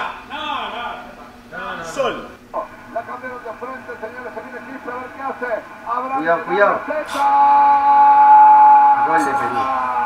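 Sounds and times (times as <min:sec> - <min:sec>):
man shouting long note: 0:06.8 - 0:10.0.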